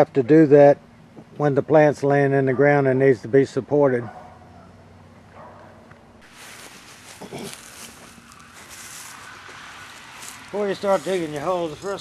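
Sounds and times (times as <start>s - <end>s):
faint steady hiss: 5.9s - 12.0s.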